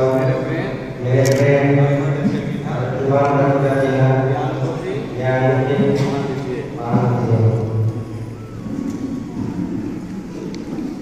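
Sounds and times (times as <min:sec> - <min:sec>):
man speaking over loudspeakers: 0:00.0 - 0:08.3.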